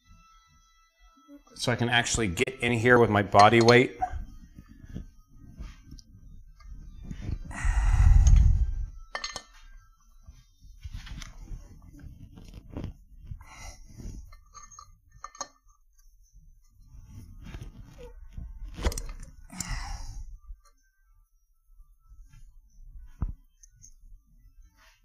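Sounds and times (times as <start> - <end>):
metal clinks and clicks: 9.1 - 9.7, 14.2 - 15.8, 18.7 - 19.8.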